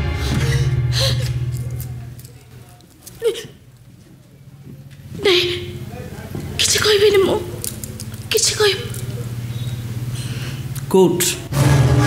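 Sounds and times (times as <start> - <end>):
woman sobbing: 0.0 - 1.6, 3.2 - 3.6, 5.2 - 5.8
faint low hum: 0.2 - 11.5.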